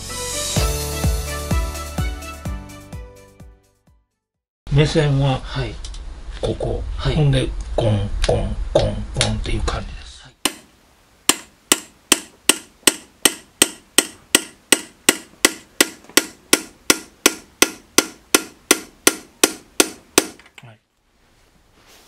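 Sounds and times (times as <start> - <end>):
hammer tapping chisel into copper: 11.3 - 20.5.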